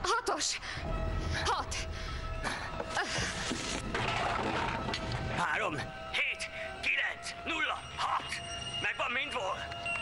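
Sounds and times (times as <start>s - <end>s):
tense film score: 0.0s - 10.0s.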